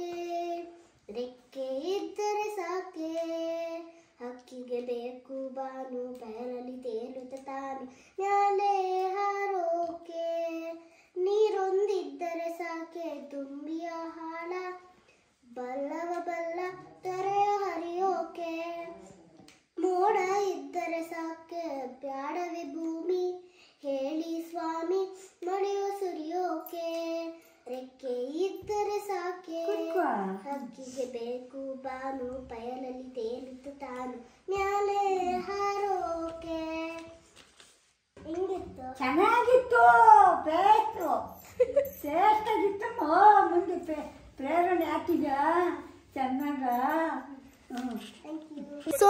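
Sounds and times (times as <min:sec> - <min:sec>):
child singing: 0:00.0 - 0:19.2, 0:19.8 - 0:37.2, 0:47.2 - 0:49.0.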